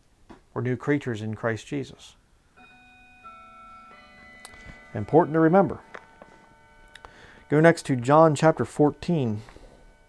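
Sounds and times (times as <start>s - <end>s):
faint organ-like keyboard chords: 1.7s - 10.0s.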